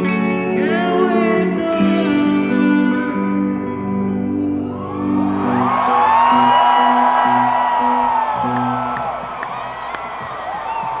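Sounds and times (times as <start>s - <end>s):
rock band low notes: 0.0s - 11.0s
crowd cheering and whooping: 4.6s - 11.0s.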